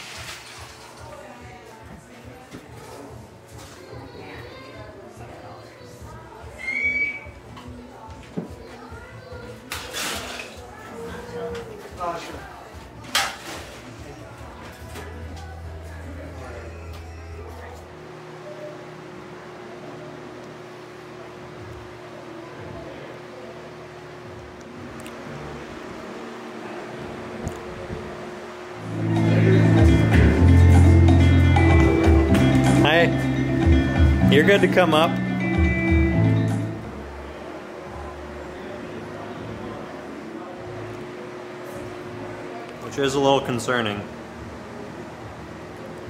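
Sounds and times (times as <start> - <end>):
room hum: 0.0 - 46.0
indistinct voices: 26.6 - 35.4.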